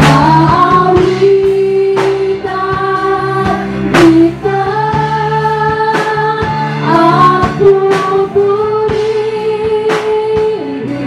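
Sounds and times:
drum kit: 0.0 - 11.0
electric guitars: 0.0 - 11.0
keyboard: 0.0 - 11.0
woman singing: 0.0 - 11.0.

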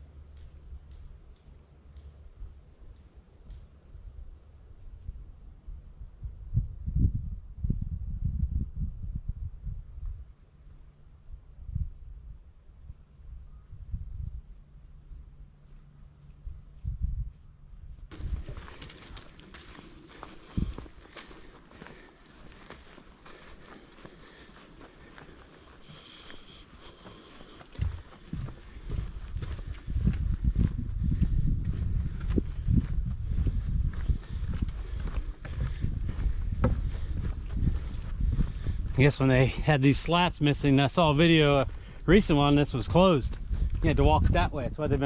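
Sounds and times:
footsteps on wooden boardwalk: 18.1 - 39.7, 41.2 - 44.4
muffled footsteps on trail: 18.1 - 45.0.

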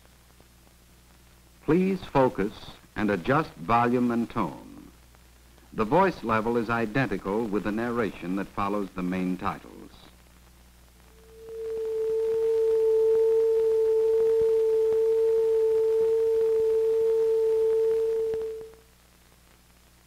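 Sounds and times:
faint soundtrack hum: 0.0 - 20.0
pure test tone: 11.1 - 18.8.

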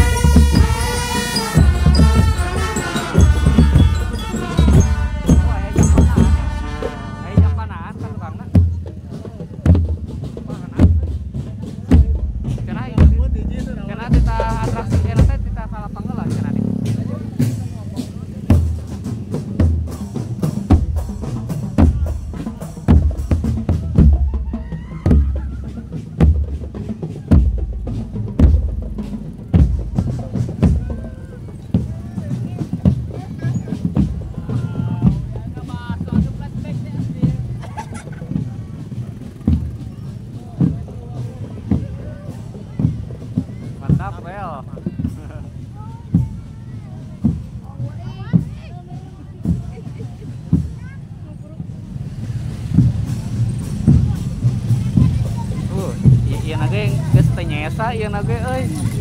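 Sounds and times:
snare drum strokes: 0.0 - 7.6, 52.0 - 57.8
bass drums beating: 0.0 - 59.0
crowd voices: 0.0 - 59.0.

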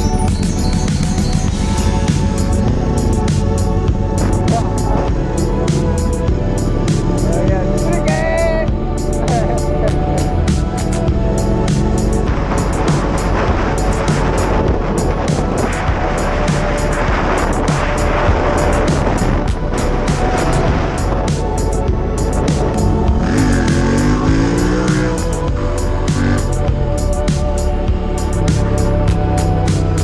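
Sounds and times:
music with steady beat: 0.0 - 30.0
wind and road noise: 0.0 - 30.0
motorcycle engine running: 19.2 - 27.0.

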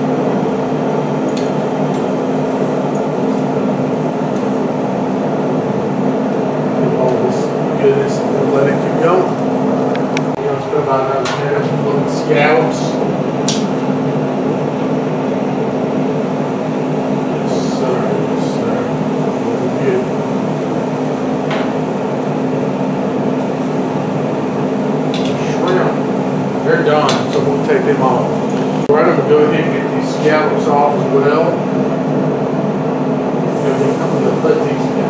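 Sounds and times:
grill fan humming: 0.0 - 35.0.

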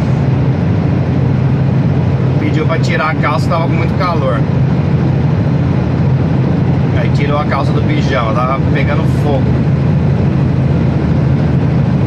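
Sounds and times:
diesel truck engine drone: 0.0 - 12.0
tyres cruising on highway: 0.0 - 12.0.

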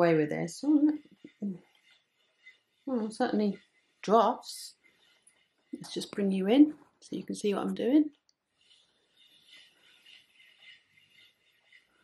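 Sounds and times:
spinning wheel whirring: 0.0 - 6.6, 8.6 - 12.0.

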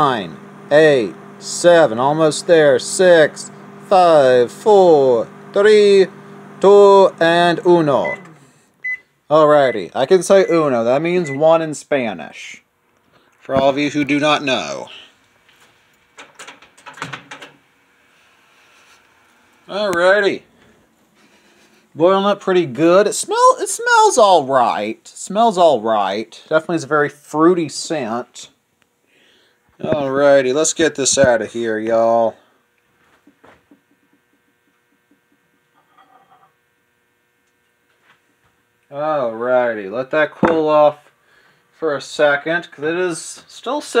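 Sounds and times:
faint electrical hum: 0.0 - 44.0.

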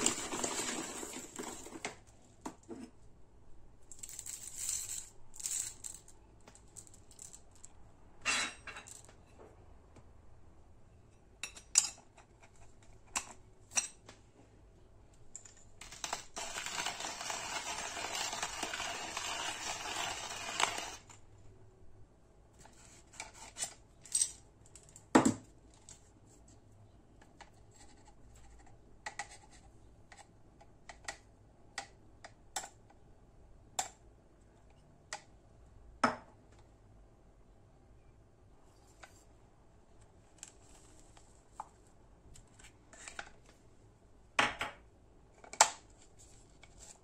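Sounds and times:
gritty rustle of coffee grounds: 15.9 - 21.1.

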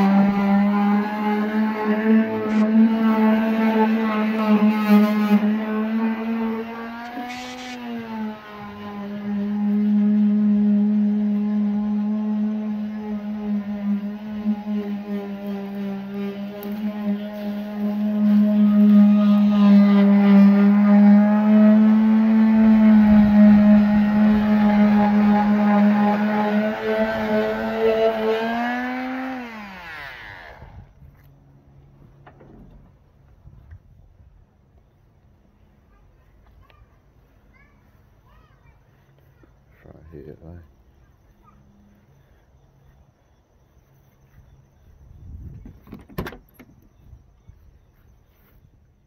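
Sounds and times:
high-pitched motor drone: 0.0 - 31.3, 38.7 - 49.0.

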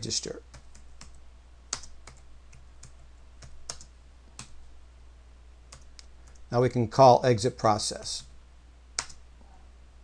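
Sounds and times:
keyboard typing: 0.5 - 4.6, 5.7 - 6.5, 9.0 - 9.2.

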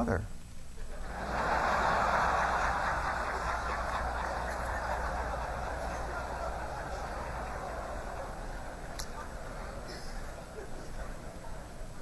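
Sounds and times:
audience laughing: 0.8 - 12.0
audience applauding: 1.0 - 12.0.

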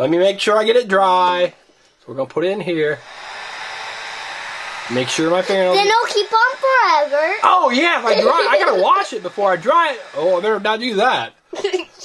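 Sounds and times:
small fan blowing air: 2.9 - 11.2.

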